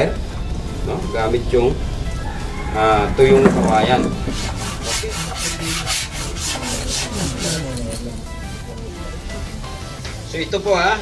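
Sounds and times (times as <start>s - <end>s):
bamboo rasping: 2.6s - 8.5s.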